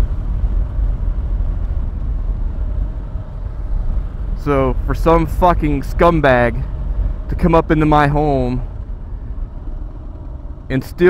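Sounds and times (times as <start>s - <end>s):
motorcycle engine cruising: 0.0s - 11.0s
wind and road noise: 0.0s - 11.0s.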